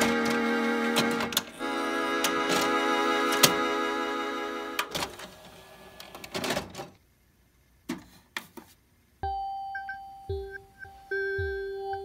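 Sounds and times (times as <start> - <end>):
cd changer clicking and clattering: 4.8 - 5.3
electronic music held tone: 9.2 - 12.0.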